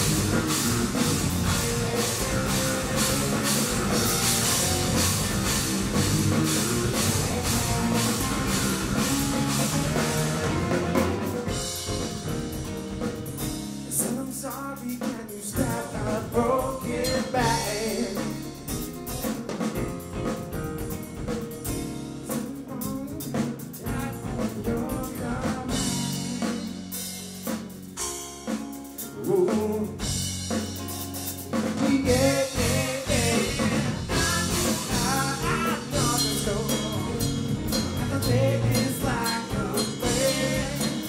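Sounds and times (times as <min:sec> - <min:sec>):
bending lead guitar melody: 0:00.0 - 0:13.9
live rock band playing: 0:00.0 - 0:41.0.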